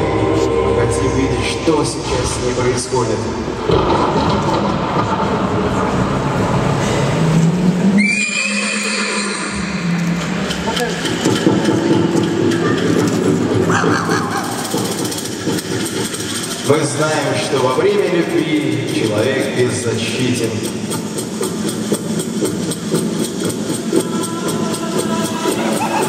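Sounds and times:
horse whinnying: 8.0s - 9.8s.

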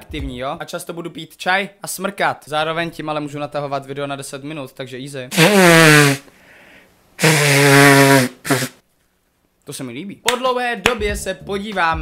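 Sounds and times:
person blowing nose: 5.3s - 6.3s, 7.2s - 8.8s.

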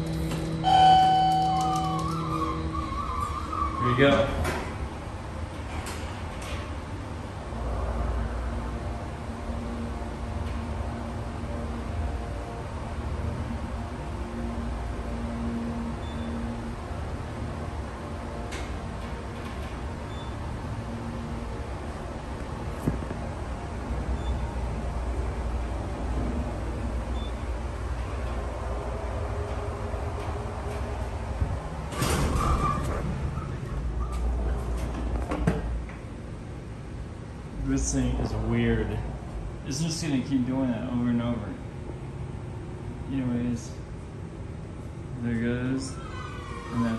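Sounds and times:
elevator low rumble: 0.0s - 46.9s
low hum: 0.0s - 46.9s.

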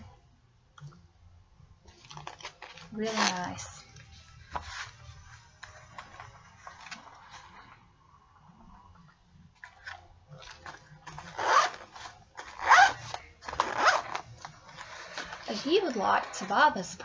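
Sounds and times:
zipper being pulled: 3.1s - 3.7s, 11.1s - 15.6s.

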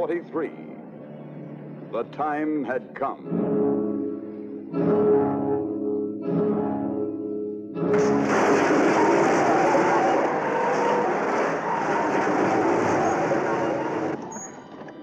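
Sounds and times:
dramatic orchestral film score: 7.9s - 14.4s.

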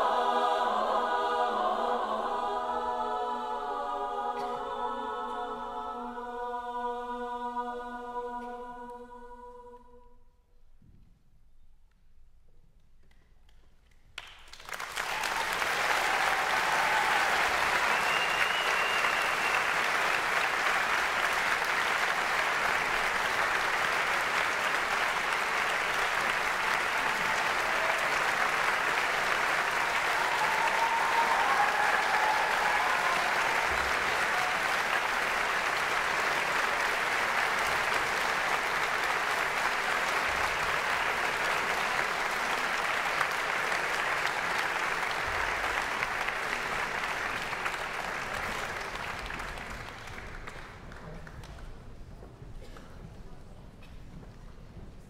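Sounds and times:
audience applauding: 14.2s - 52.0s.

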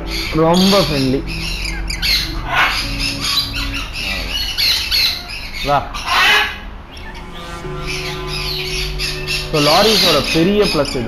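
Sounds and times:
music with held note: 0.0s - 5.3s, 7.0s - 11.0s
parrot call: 0.0s - 11.0s.

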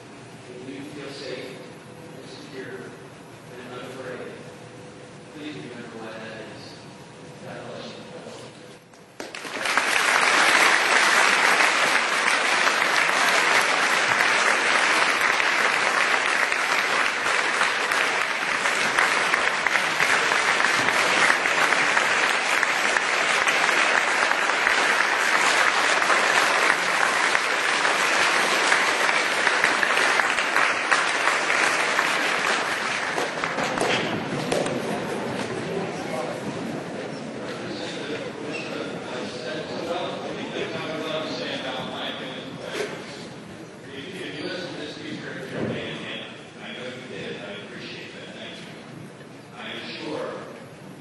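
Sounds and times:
large crowd applauding: 9.2s - 35.9s.

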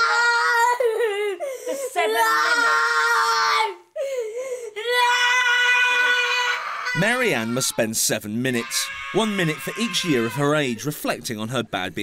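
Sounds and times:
girl screaming wail: 0.0s - 4.0s, 4.8s - 7.8s, 8.5s - 10.6s.

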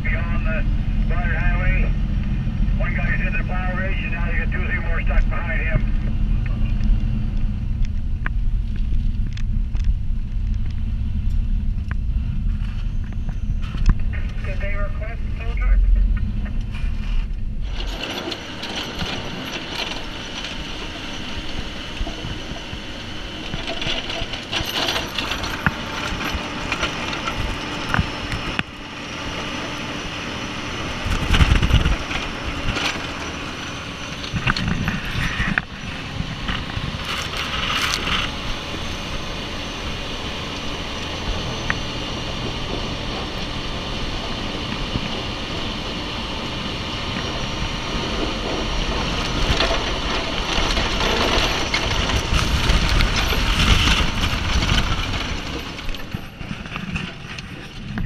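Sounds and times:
diesel engine drone: 0.0s - 58.0s
rushing wind and snow: 0.0s - 58.0s.

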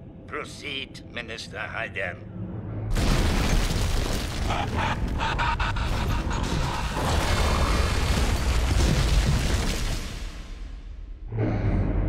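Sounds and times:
crashing debris: 2.9s - 5.2s, 6.9s - 10.8s
deep rumbling explosion: 2.9s - 11.1s.

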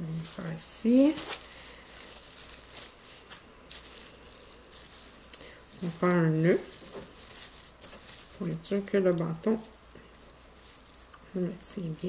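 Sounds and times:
plastic sheeting crinkling: 0.0s - 12.0s.

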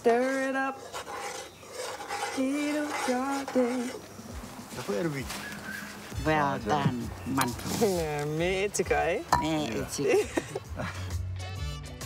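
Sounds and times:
metal spoon stirring in pot: 0.0s - 4.7s.

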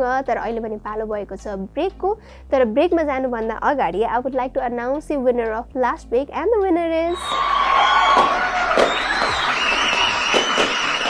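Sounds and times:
crowd applause and cheering: 7.1s - 11.0s.

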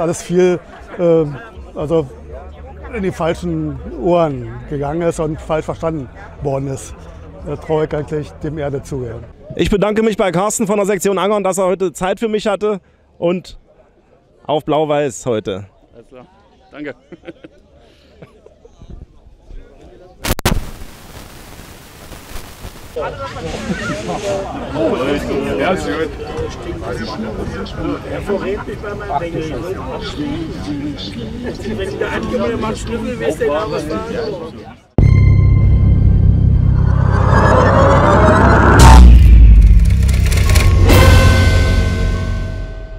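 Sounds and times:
deep rumble: 35.0s - 42.9s
sharp hit with low boom: 35.0s - 42.9s
whoosh-like hit: 35.0s - 42.9s
crackling splintering noises: 39.2s - 40.9s.

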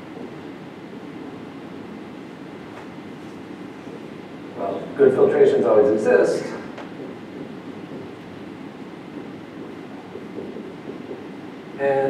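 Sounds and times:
low room noise hiss: 0.0s - 12.0s.

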